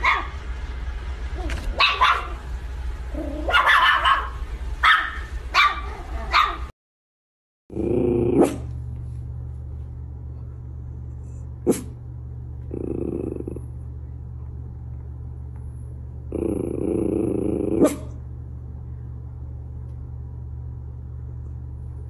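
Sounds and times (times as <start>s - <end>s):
steady low hum: 0.0s - 6.7s, 7.7s - 22.0s
dog growling: 7.7s - 8.7s, 12.6s - 13.8s, 16.3s - 18.2s.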